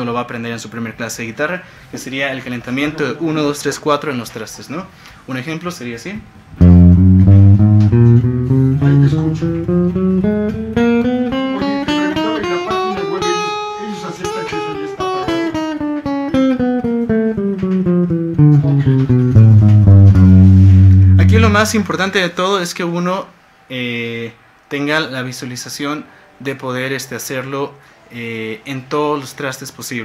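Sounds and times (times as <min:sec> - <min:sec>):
electric guitar single notes: 0:06.4 - 0:22.0.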